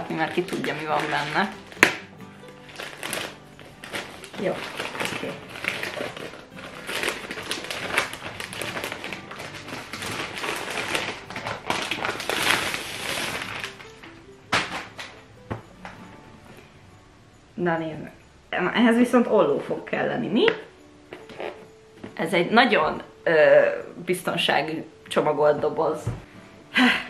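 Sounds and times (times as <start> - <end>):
wrapping paper tearing and crumpling: 0.2 - 2.0, 2.6 - 14.0.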